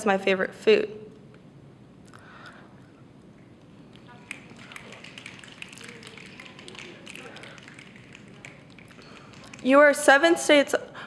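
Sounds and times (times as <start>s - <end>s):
soft taps and clicks from audience: 3.6s - 9.8s
faint murmuring: 3.7s - 10.1s.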